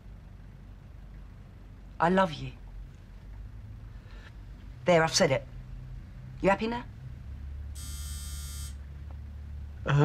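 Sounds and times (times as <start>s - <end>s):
steady low hum: 0.0s - 10.0s
high electronic buzz: 7.8s - 8.8s.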